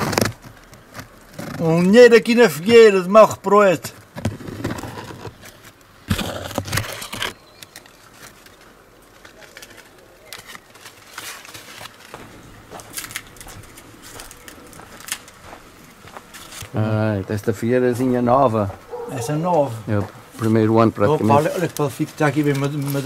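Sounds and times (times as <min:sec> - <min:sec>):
leaves rustling against camera: 0:00.0 - 0:23.0.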